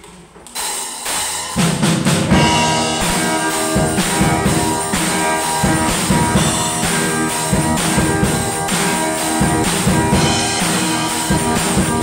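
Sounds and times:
drum beats: 0.5 - 12.0
cymbals: 0.6 - 12.0
live band playing: 0.6 - 12.0.

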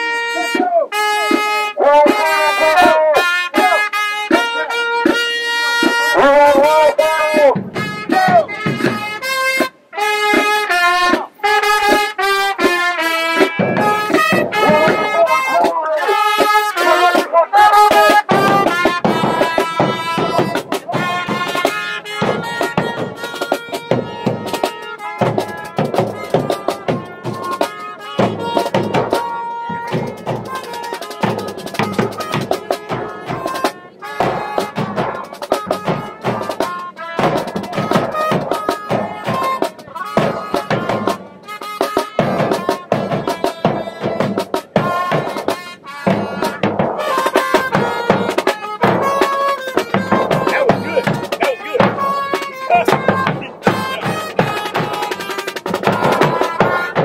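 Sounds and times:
snare and bass drum beat: 0.0 - 57.0
trumpet playing: 0.0 - 57.0.

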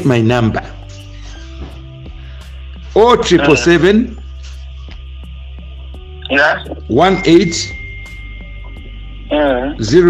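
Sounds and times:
conversation: 0.0 - 10.0
man speaking: 3.0 - 4.2, 6.3 - 7.8.

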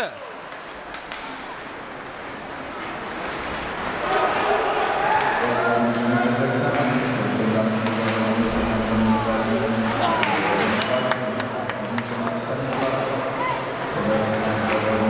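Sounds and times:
hockey sticks and puck clacking: 0.4 - 13.1, 13.8 - 15.0
echoing voices and shouts: 3.9 - 15.0.

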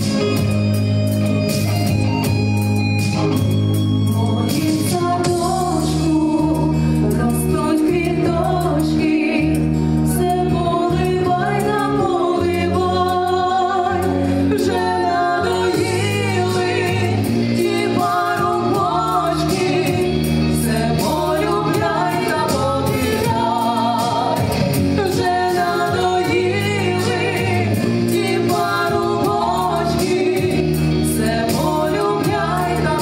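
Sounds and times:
instrumental backing track: 0.0 - 33.0
women singing together: 4.6 - 33.0.

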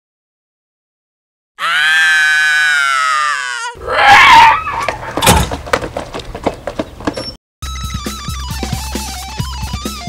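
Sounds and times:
loud scream: 1.6 - 5.0
harsh shriek: 1.6 - 5.3.

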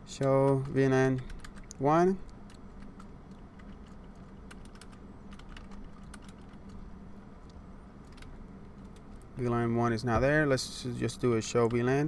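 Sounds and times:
low steady hum: 0.0 - 12.0
typing on computer keyboard: 0.2 - 1.8, 2.5 - 6.8.

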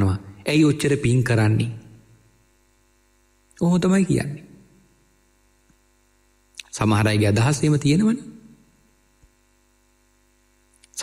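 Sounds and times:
man speaking: 0.0 - 2.0, 3.6 - 4.6, 6.6 - 8.5
faint steady hum: 0.0 - 11.0.

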